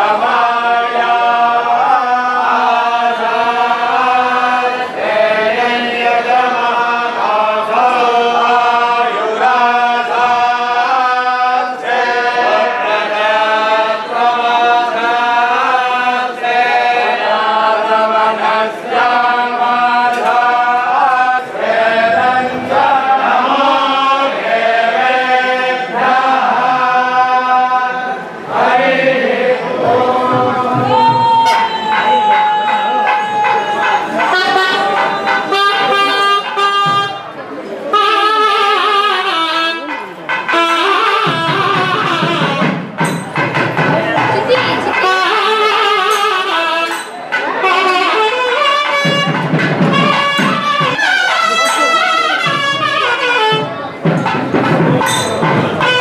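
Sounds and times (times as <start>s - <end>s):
men chanting in unison: 0.0s - 35.5s.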